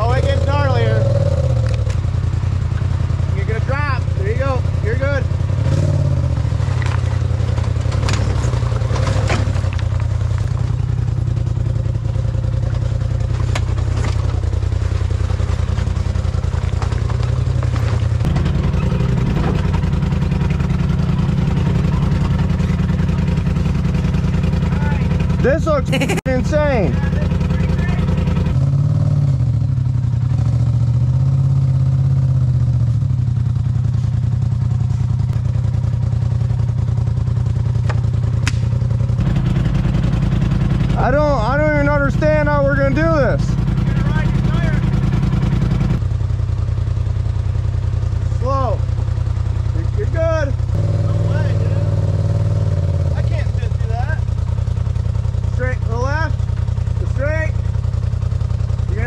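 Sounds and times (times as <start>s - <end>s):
off-road vehicle engine running low: 0.0s - 59.0s.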